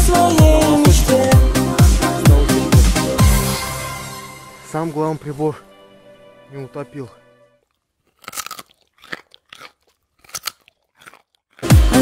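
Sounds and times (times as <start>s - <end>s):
carrot crunching: 7.6s - 12.0s.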